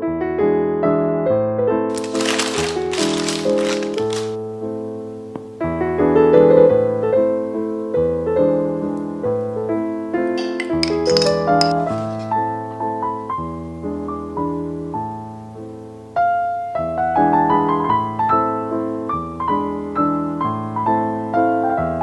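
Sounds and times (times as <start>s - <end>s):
gentle piano music: 0.0s - 22.0s.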